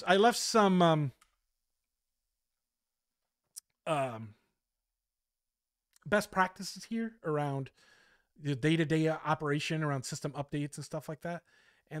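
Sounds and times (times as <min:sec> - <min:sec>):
man speaking: 0:00.0 - 0:01.2, 0:03.6 - 0:04.4, 0:06.0 - 0:07.8, 0:08.4 - 0:12.0.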